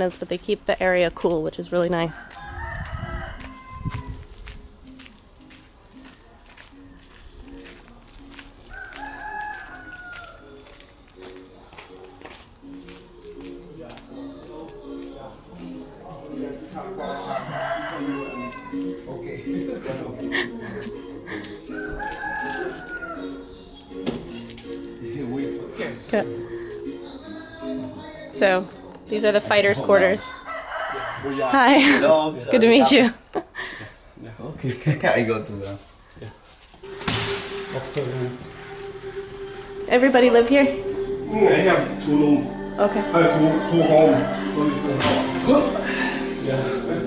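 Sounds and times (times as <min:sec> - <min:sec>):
faint music: 0:00.0 - 0:47.0
rooster crowing: 0:02.0 - 0:04.4, 0:08.6 - 0:10.7, 0:16.7 - 0:19.1, 0:21.7 - 0:23.7, 0:30.2 - 0:32.2, 0:36.8 - 0:47.0
footsteps: 0:02.1 - 0:16.0, 0:20.6 - 0:25.0, 0:35.6 - 0:41.2.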